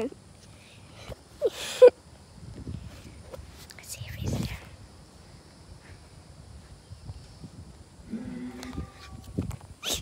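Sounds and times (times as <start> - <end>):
animal cry: 8.1 - 9.2.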